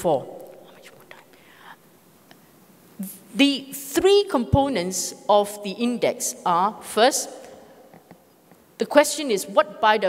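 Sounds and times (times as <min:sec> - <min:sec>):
soft breathy hiss: 0:00.4 - 0:03.4.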